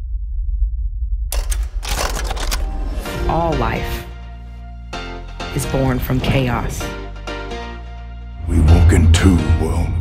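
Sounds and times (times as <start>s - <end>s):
deep low rumble: 0.0s - 1.7s.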